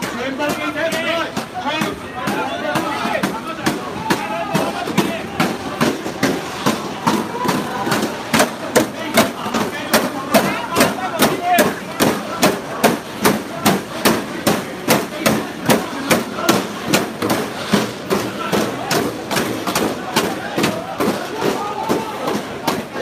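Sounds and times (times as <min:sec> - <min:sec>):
crowd voices: 0:00.0 - 0:23.0
rhythmic banging: 0:00.0 - 0:23.0.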